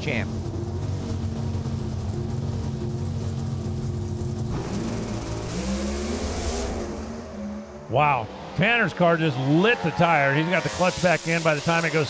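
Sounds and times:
drag car engines revving: 0.0 - 12.0.

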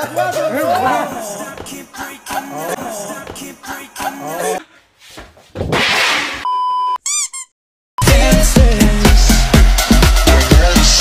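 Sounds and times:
high censor bleep: 6.4 - 7.3
squeaky chirps: 7.0 - 7.6.

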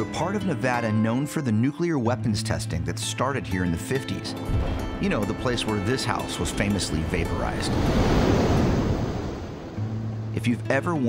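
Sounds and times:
explosion blast wave: 4.4 - 10.1.

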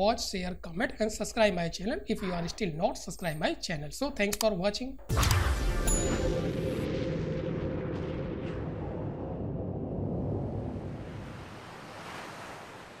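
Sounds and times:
deep noisy rumble: 6.4 - 11.5.

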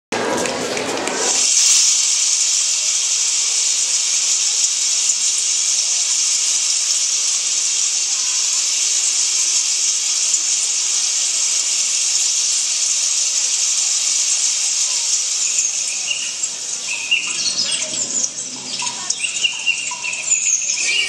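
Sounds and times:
loud rain-like hiss: 0.2 - 21.0.

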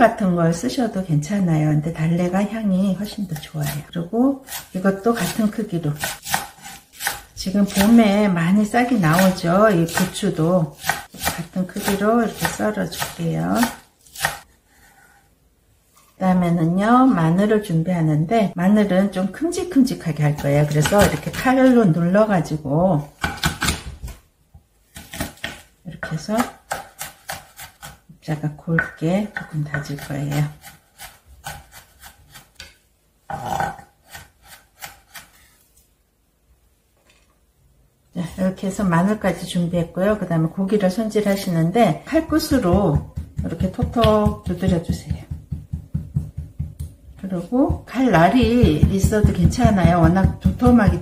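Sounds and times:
knife chopping on wooden board: 4.5 - 8.0, 9.1 - 14.4, 28.8 - 32.7, 34.1 - 35.4, 42.2 - 47.0, 47.7 - 51.0.

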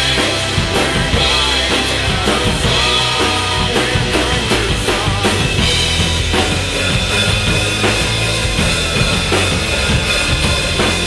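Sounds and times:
drum kit playing: 0.0 - 11.0
rock backing track: 0.0 - 11.0.

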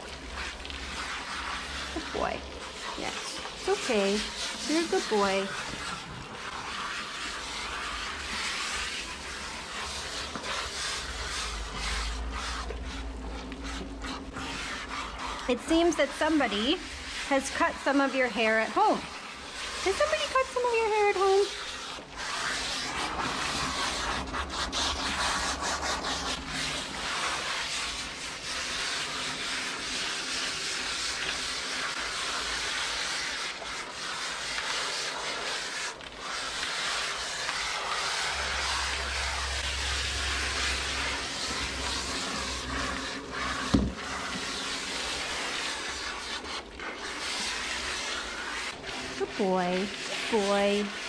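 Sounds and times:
hose spray hissing: 0.0 - 12.8, 14.0 - 24.3, 26.2 - 51.0.

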